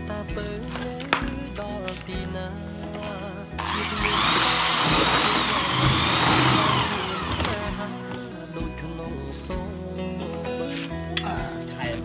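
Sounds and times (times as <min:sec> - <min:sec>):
background music: 0:00.0 - 0:12.0
electric drill motor whine: 0:03.6 - 0:08.0.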